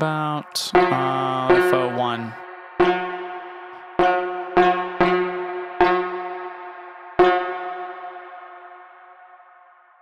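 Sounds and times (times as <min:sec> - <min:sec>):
synth bell notes ringing: 0:00.7 - 0:10.0.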